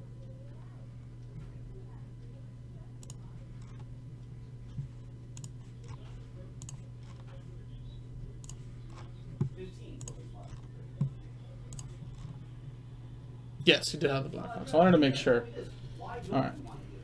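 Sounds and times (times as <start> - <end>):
steady low hum: 0.0 - 17.0
mouse and keyboard clicks: 4.7 - 7.5, 8.4 - 12.4.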